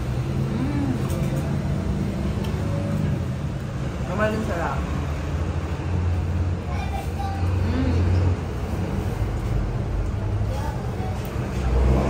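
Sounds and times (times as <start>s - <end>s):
street traffic rumble: 0.0s - 12.0s
faint voices: 0.3s - 1.8s.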